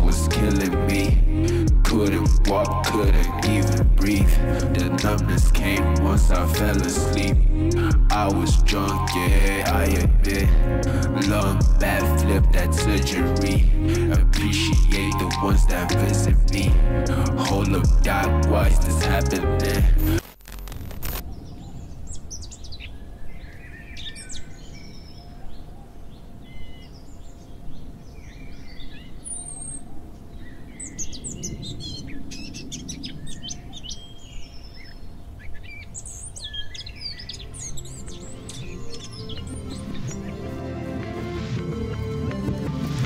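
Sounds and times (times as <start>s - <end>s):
low repeating musical pattern: 0.0s - 20.2s, 37.4s - 43.0s
steady low rumble: 0.0s - 21.2s
birds chirping and whistling: 21.2s - 41.3s.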